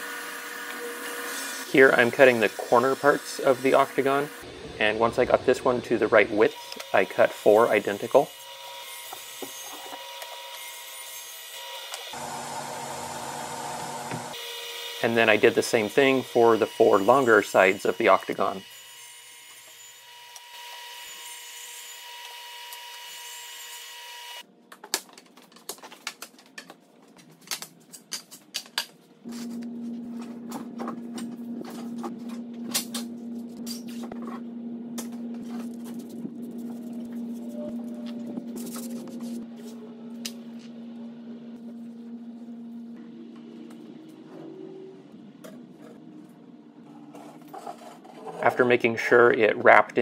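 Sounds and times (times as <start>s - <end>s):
hum and whine: 29.3s - 47.9s
steady low hum: 29.3s - 48.3s.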